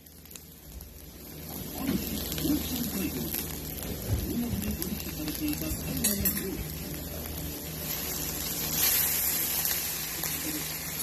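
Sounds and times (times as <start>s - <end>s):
food sizzling: 0.0s - 11.0s.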